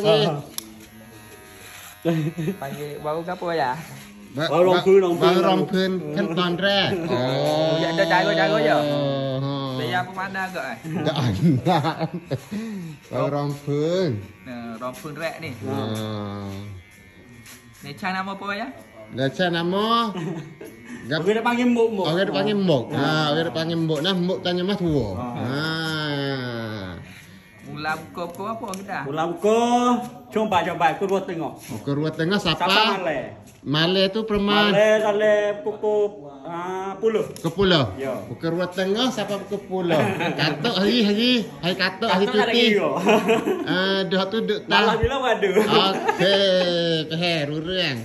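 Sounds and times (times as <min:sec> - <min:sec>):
man talking: 0:00.0 - 0:00.6, 0:02.1 - 0:10.1, 0:43.7 - 0:48.0
electric hair clipper running: 0:00.0 - 0:31.3, 0:37.3 - 0:48.0.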